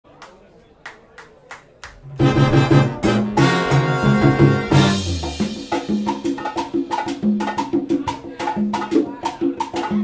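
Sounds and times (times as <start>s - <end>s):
salsa band playing: 2.0s - 10.0s
sharp percussion hits: 2.1s - 7.8s.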